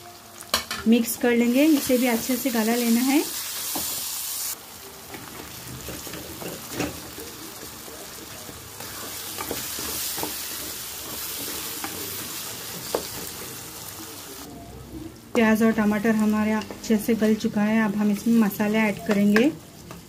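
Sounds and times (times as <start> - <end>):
vegetables sizzling in hot oil: 0.0 - 14.5, 15.2 - 20.0.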